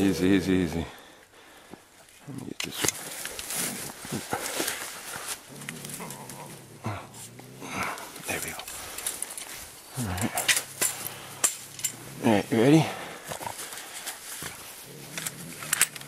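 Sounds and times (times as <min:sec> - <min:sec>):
scuffing in dry leaves: 0:03.0 - 0:06.6, 0:13.0 - 0:15.2
bobcat growling low: 0:05.2 - 0:09.0, 0:09.8 - 0:13.8, 0:14.5 - 0:16.0.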